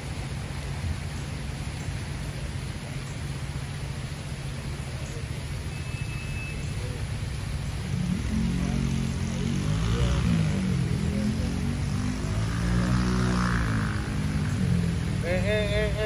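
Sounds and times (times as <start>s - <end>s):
fountain water rushing: 0.0s - 16.0s.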